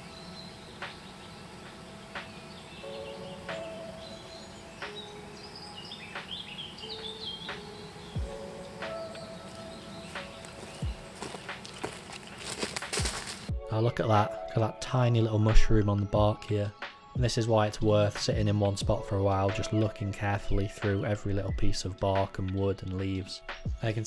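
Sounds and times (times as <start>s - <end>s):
birds chirping: 0.0s - 24.0s
soft music of held chords: 0.0s - 24.0s.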